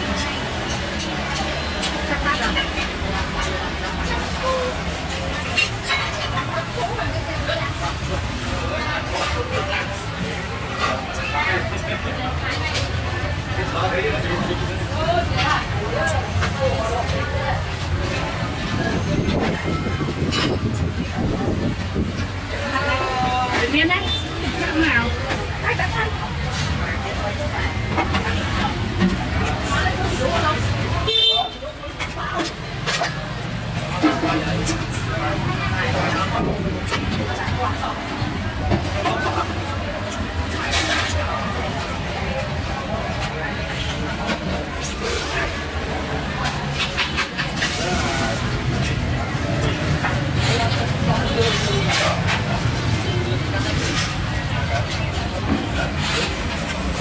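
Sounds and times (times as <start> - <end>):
motorbike engines: 0.0 - 57.0
people talking: 0.0 - 57.0
street traffic rumble: 0.0 - 57.0.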